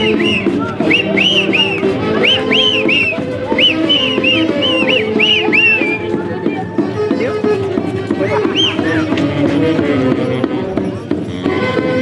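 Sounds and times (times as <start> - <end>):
shrill whistle-like melody: 0.0 - 6.2, 8.2 - 9.1
folk dance accompaniment: 0.0 - 12.0.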